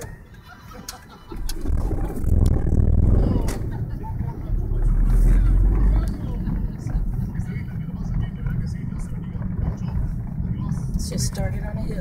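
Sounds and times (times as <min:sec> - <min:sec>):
road rumble: 0:00.0 - 0:12.0
car engine: 0:01.3 - 0:12.0.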